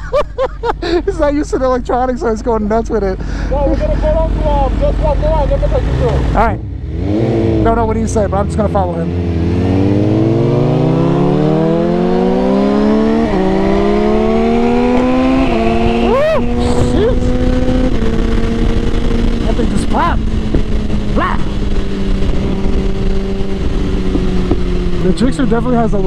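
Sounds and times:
motorcycle engine accelerating: 0.0 - 26.0.

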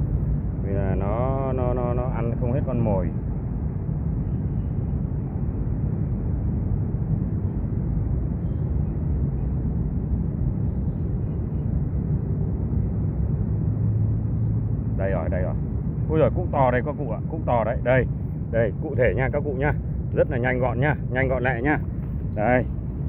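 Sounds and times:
low outdoor rumble: 0.0 - 23.0.

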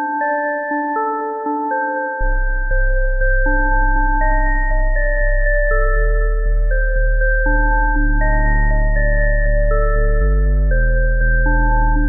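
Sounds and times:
synth melody: 0.2 - 12.0
pulsing deep bass line: 2.2 - 12.0.

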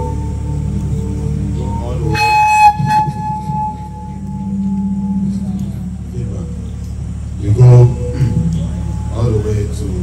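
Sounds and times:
low steady drone: 0.0 - 10.0
horn-like blast: 2.1 - 5.0.

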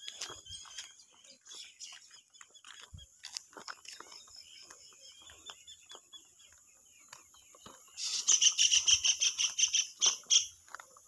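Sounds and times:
footsteps on road: 0.0 - 11.0
bird chirping rapidly: 3.8 - 10.6.

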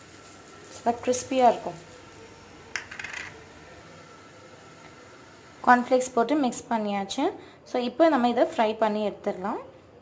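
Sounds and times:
dry rustle of crispy flakes: 0.0 - 2.4
room hiss: 0.0 - 2.8.

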